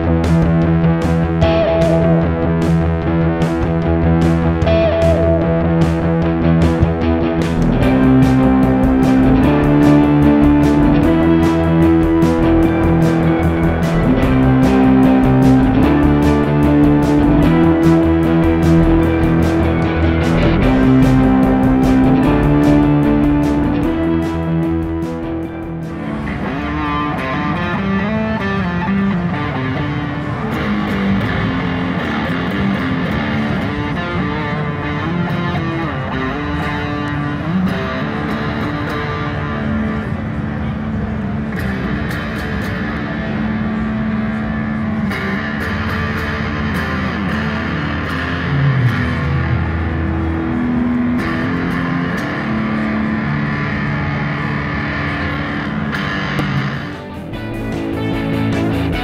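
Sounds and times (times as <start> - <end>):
electric guitar melody: 0.0 - 59.0.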